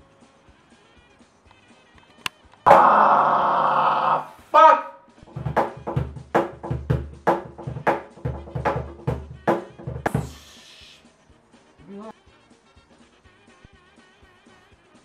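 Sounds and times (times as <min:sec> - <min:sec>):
loud drawn-out cry: 0:02.7 - 0:05.1
cajon played by hand: 0:05.3 - 0:10.5.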